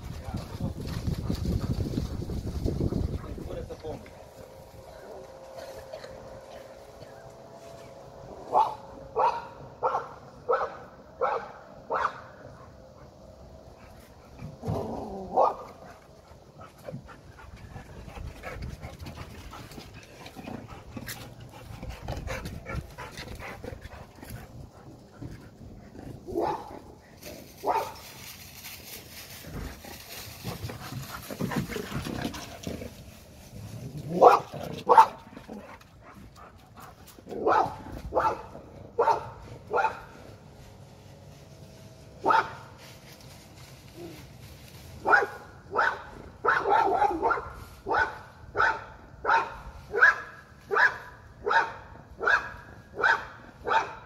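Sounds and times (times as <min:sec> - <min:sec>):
dog barking: 0:08.5 - 0:12.4, 0:26.4 - 0:26.7, 0:27.6 - 0:28.0, 0:34.2 - 0:35.2, 0:37.4 - 0:40.1, 0:42.2 - 0:42.6, 0:45.0 - 0:54.0.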